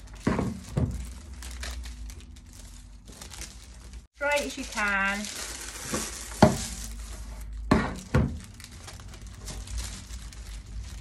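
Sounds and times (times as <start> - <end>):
crinkly paper and plastic rustle: 0.0 - 11.0.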